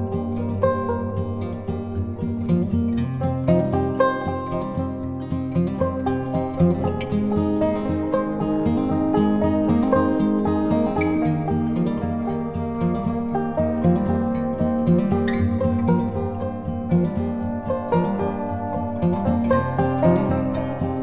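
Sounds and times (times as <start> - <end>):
soft acoustic guitar music: 0.0 - 21.0.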